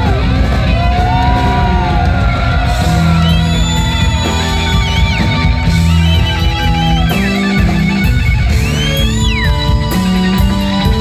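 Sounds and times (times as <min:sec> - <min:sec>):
electric guitar lead: 0:00.0 - 0:11.0
live rock band: 0:00.0 - 0:11.0.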